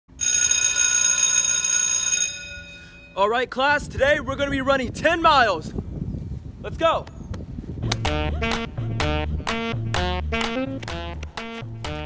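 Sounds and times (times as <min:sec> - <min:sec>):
school bell ringing: 0:00.1 - 0:03.4.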